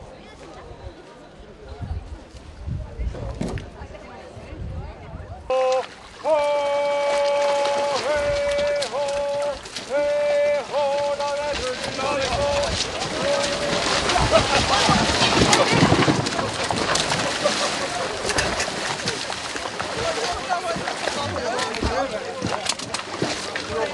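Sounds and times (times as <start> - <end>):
water splashing: 5.5 - 23.9.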